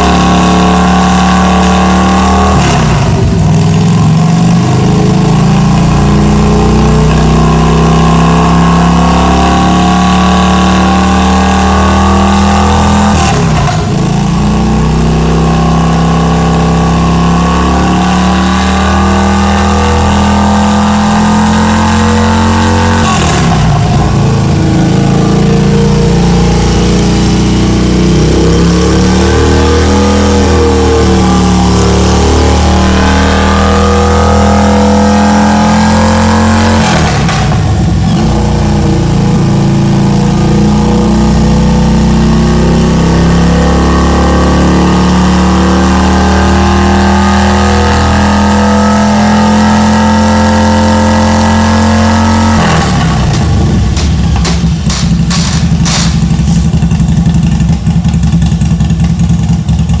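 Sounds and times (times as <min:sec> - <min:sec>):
motorcycle engine running: 0:00.0 - 0:18.1, 0:19.5 - 0:49.6, 0:52.2 - 1:00.0
sharp exhaust pops: 0:36.8 - 0:38.4, 0:52.6 - 1:00.0.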